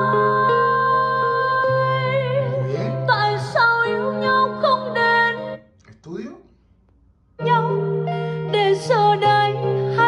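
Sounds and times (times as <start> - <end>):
pop ballad through a speaker: 0.0 - 5.6, 7.4 - 10.0.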